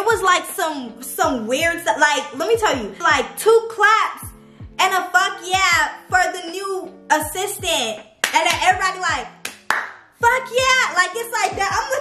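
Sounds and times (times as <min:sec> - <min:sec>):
hip-hop beat with sliding bass: 0:00.0 - 0:06.4, 0:07.1 - 0:12.0
woman's animated voice: 0:04.8 - 0:09.3, 0:10.2 - 0:12.0
sharp hand claps: 0:08.2 - 0:10.0.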